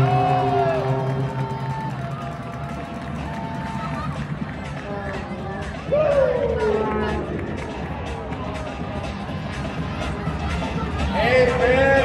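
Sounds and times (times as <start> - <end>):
arena music over loudspeakers: 0.0 - 12.0
crowd chatter: 0.0 - 12.0.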